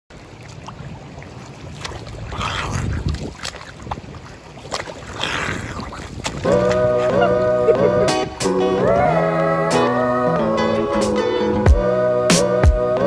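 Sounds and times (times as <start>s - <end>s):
water splashing from swimming: 0.1s - 9.2s.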